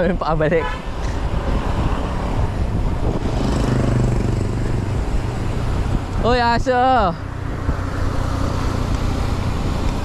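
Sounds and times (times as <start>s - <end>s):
wind and road rumble: 0.0s - 10.0s
motorcycle passing: 0.8s - 6.2s, 7.0s - 10.0s.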